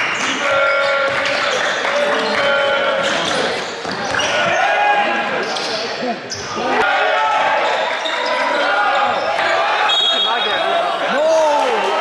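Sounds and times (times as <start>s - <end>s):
crowd talking and calling out: 0.0s - 12.0s
sneakers squeaking on court: 3.0s - 4.6s, 5.4s - 6.6s.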